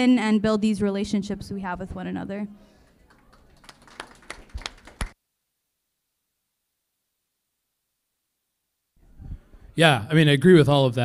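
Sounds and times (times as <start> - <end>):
audience hand claps: 2.8 - 5.2.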